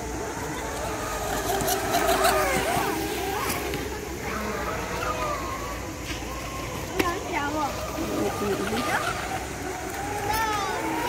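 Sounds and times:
model speedboat motor whine: 0.0s - 11.0s.

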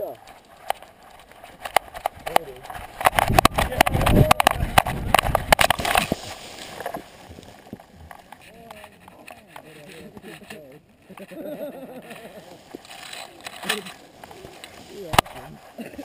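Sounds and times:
camera knocking and rubbing: 0.2s - 11.4s, 12.1s - 16.0s.

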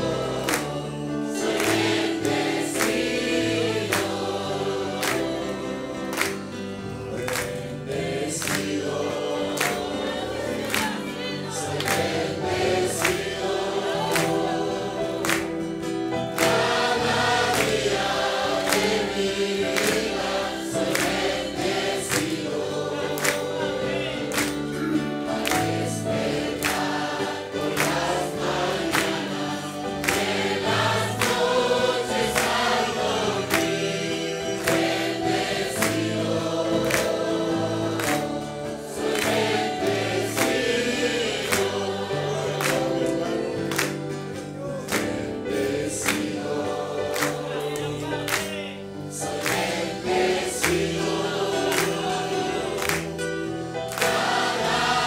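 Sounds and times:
congregation singing a hymn: 0.0s - 55.0s
musical accompaniment: 0.0s - 55.0s.

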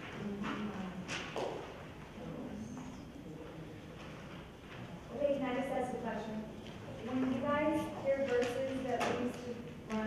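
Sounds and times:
low room murmur with voices: 0.0s - 10.0s.

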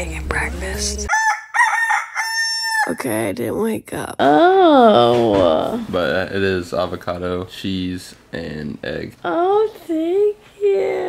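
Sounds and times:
rooster crowing: 1.1s - 3.0s.

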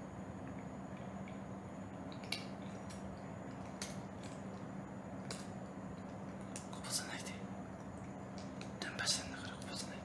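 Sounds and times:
cat crunching dry kibble: 0.5s - 7.0s.

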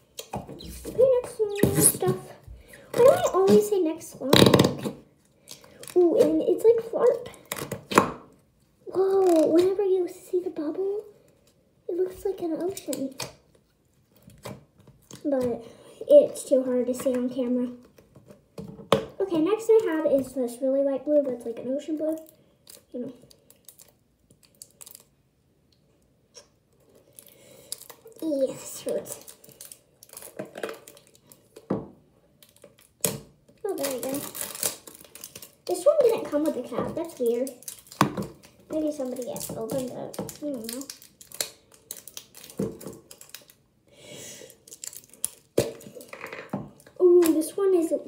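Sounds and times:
plastic tub clicks and crinkling: 32.4s - 43.6s.

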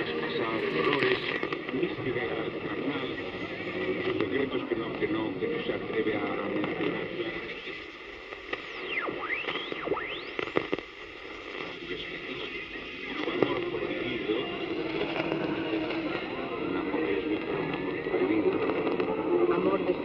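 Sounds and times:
radio static hiss: 0.0s - 20.0s
radio tuning whistles: 0.0s - 20.0s
radio voice: 0.0s - 20.0s.

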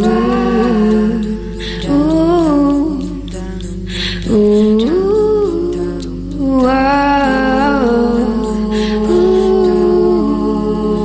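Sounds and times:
person humming a melody: 0.0s - 11.0s.

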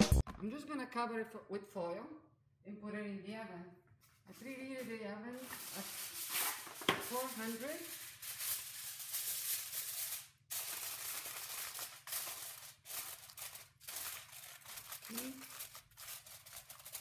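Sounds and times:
aluminium foil crinkling: 5.4s - 17.0s.

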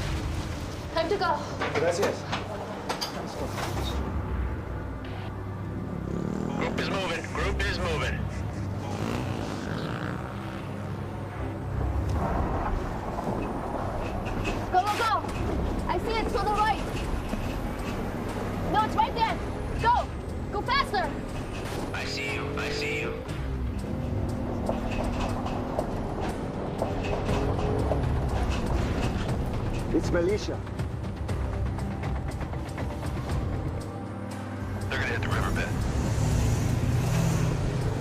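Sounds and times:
tense music score: 0.0s - 38.0s
vehicle engine low rumble: 11.0s - 38.0s.

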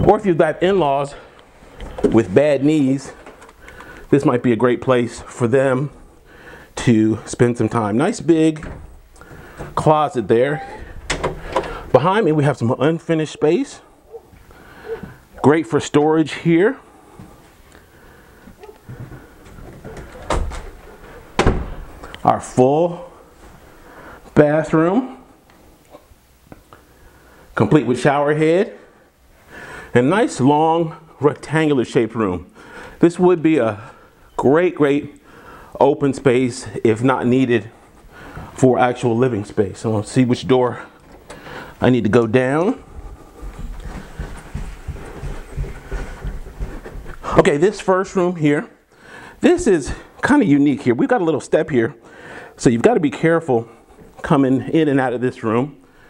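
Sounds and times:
door opening: 8.5s - 12.0s, 18.6s - 22.0s
footsteps on carpeted stairs: 14.2s - 15.2s, 17.1s - 17.6s, 18.4s - 21.9s, 42.6s - 47.9s.

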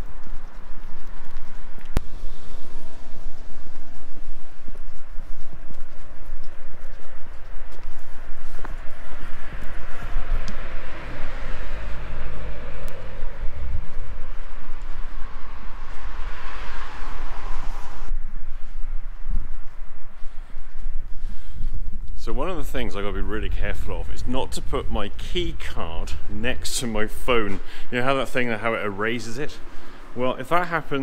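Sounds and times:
low rumble: 0.0s - 30.6s
footsteps on brick paving: 0.0s - 31.0s.

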